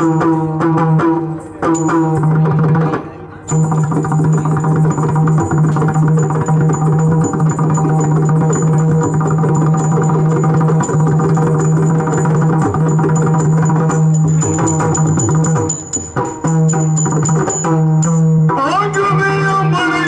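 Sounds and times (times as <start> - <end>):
small hand cymbals ringing: 3.5 - 19.1.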